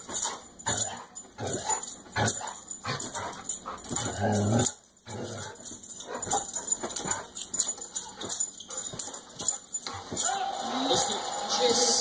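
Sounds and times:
dog whining and yelping: 0.1s - 10.4s.

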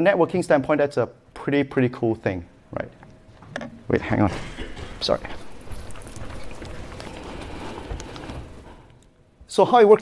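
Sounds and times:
rustling and handling noise: 2.9s - 9.6s.

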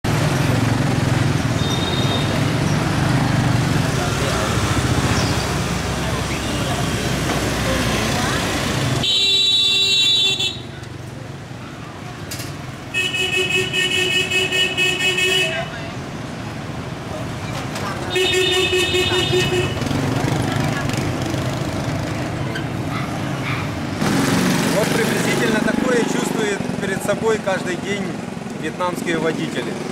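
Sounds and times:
motorbike traffic noise: 0.0s - 29.9s
motorbike horns beeping: 1.6s - 2.4s, 9.0s - 10.8s, 12.9s - 15.8s, 18.1s - 20.0s.

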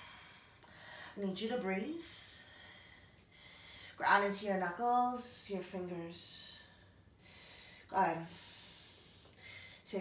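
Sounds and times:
woman breathing: 0.0s - 1.2s, 2.1s - 4.0s, 6.6s - 10.0s.

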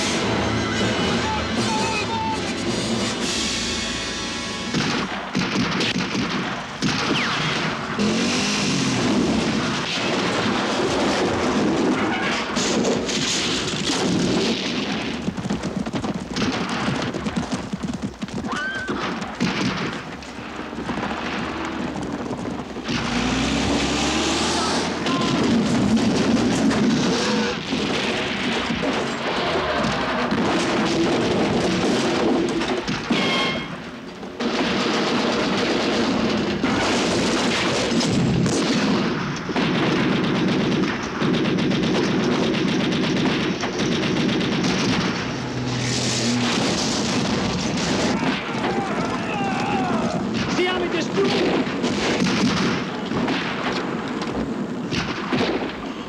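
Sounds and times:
military vehicles crashing: 0.0s - 56.0s
gunfire: 4.7s - 56.0s
booms: 8.8s - 56.0s.

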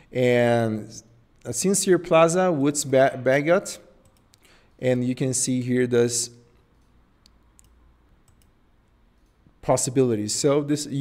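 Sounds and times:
computer mouse clicks: 4.0s - 4.5s, 6.6s - 8.6s.

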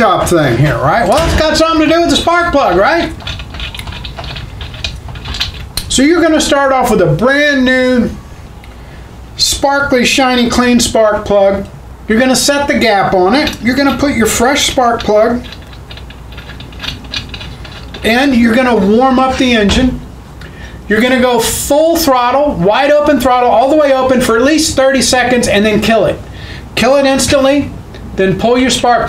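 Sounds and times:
metal clicks and scrapes: 1.0s - 5.9s, 13.3s - 18.7s.

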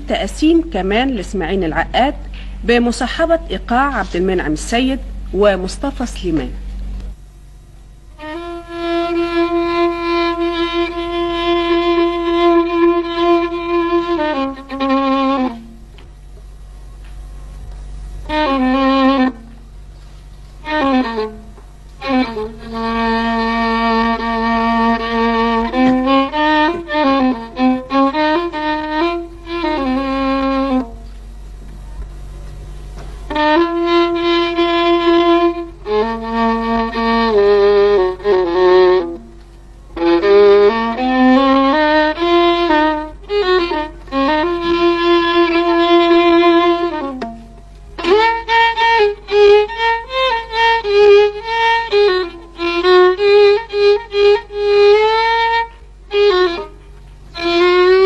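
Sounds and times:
solo violin improvising: 8.0s - 16.7s, 17.8s - 58.0s.

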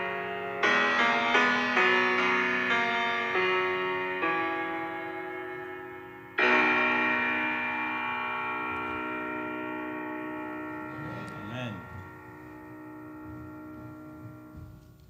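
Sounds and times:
grand piano chord ringing: 0.0s - 15.0s.

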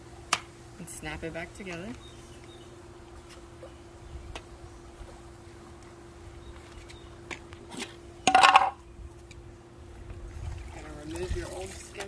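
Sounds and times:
low hum with rumble: 0.0s - 12.0s.

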